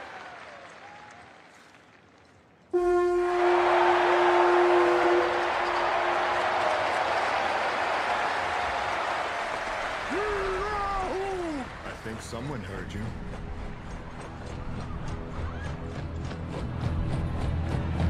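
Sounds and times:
crowd cheering: 0.0 - 18.0
horn blown in long note: 2.7 - 7.2.

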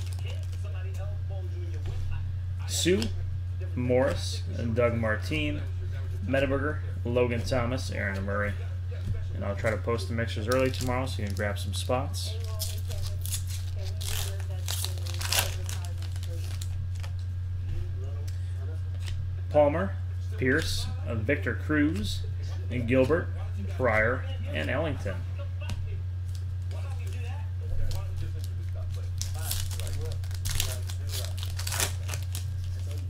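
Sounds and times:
foil pack tearing and crinkling: 0.0 - 0.7, 10.5 - 11.7, 12.3 - 17.2, 26.3 - 33.0
steady low hum: 0.0 - 33.0.

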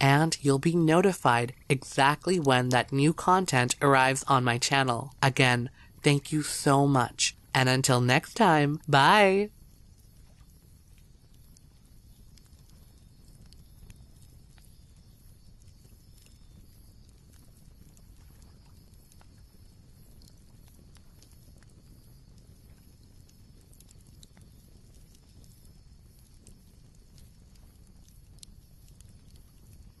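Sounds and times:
wood fire crackling: 0.0 - 30.0.

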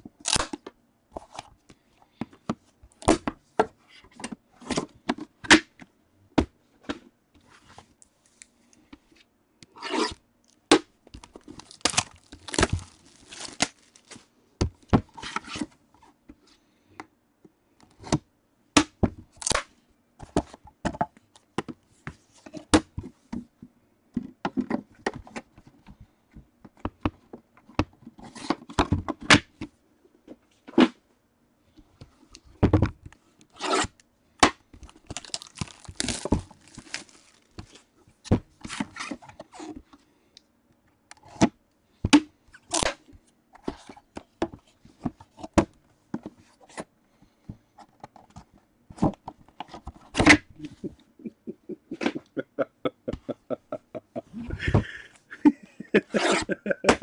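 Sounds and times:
cardboard rustling and scraping: 11.2 - 14.3, 34.9 - 37.9.

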